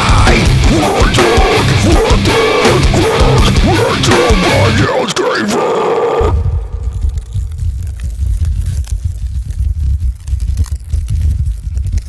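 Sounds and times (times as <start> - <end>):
song playing: 0.0 - 5.6
low rumble with crackles: 6.2 - 12.0.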